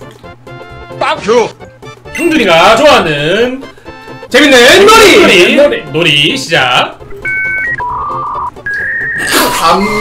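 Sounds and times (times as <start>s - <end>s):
electronic jingle: 7.2s - 9.3s.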